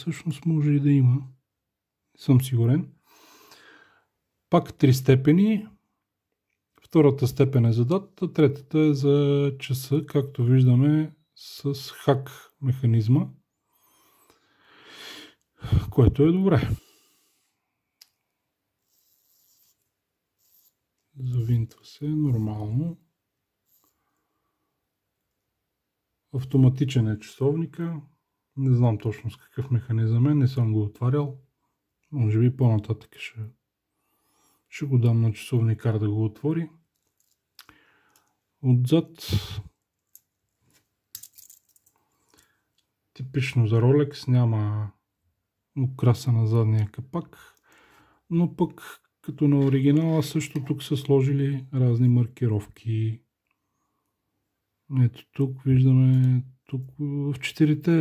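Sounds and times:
man's voice: 15.6 - 16.9, 21.2 - 23.0, 38.6 - 39.7, 48.3 - 53.2, 54.9 - 58.0
soft breath-like hiss: 18.8 - 20.8.

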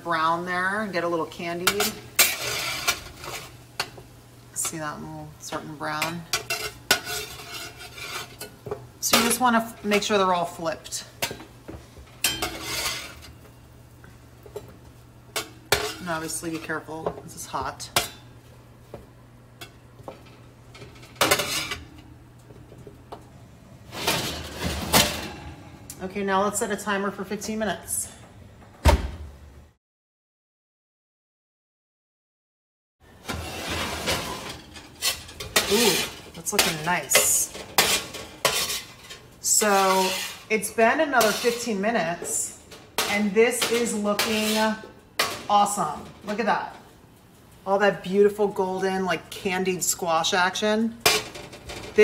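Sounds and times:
spatula scraping metal sheet pan: 6.3 - 8.5, 12.3 - 13.2, 33.3 - 44.8.

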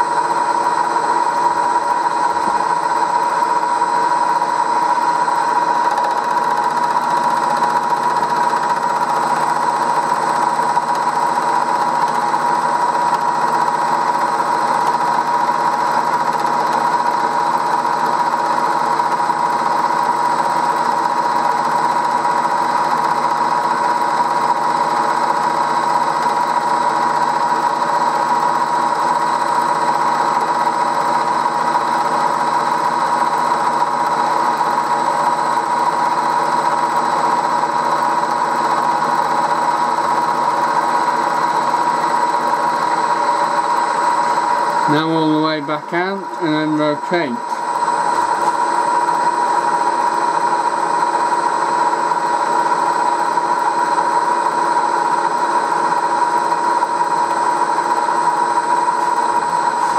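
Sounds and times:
milling machine whining: 0.0 - 59.9.

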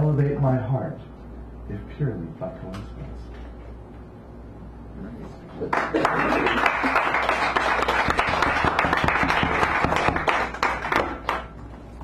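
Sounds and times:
audience applauding: 5.7 - 11.6.

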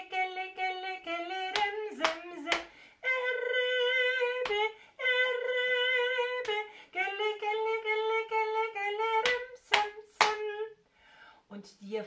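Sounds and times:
woman singing: 0.0 - 10.8.

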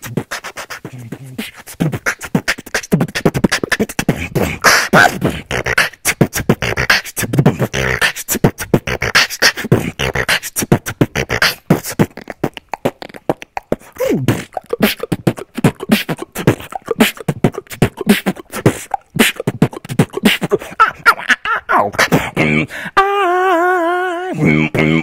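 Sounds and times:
person beatboxing: 0.0 - 25.0.

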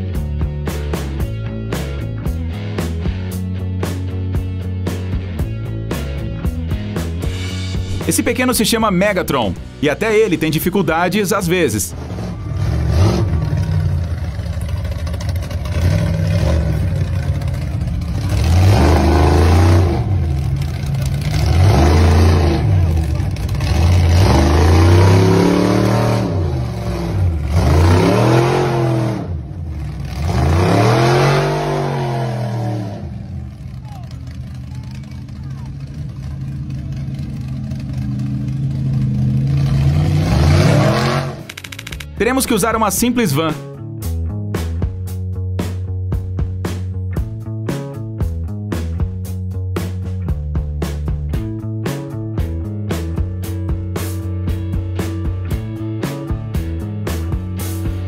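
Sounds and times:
truck engine revving: 0.0 - 58.0
crowd voices: 33.7 - 37.4.

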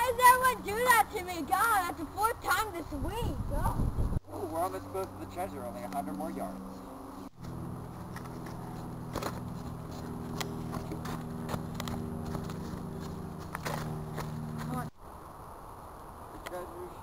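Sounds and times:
footsteps running on dirt: 7.4 - 14.9.

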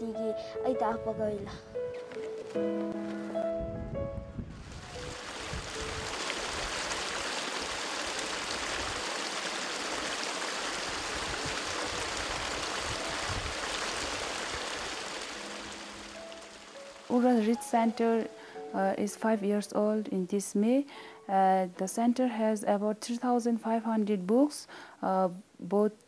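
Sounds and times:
stream running over stones: 4.6 - 18.3.

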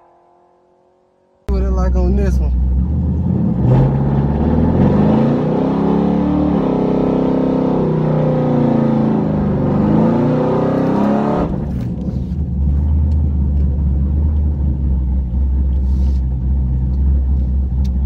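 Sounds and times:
car engine revving: 0.0 - 18.0
engine rumbling idle: 1.5 - 3.3, 11.6 - 18.0.

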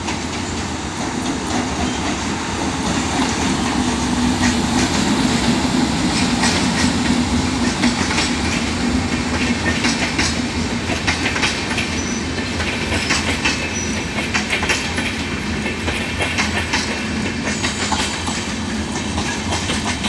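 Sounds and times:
clickety-clack over rail joints: 0.0 - 20.0
train wheels rumbling on rails: 0.0 - 20.0.

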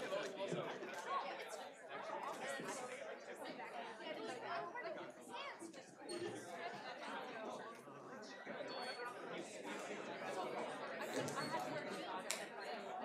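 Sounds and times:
crowd chatter in a hall: 0.0 - 13.0.

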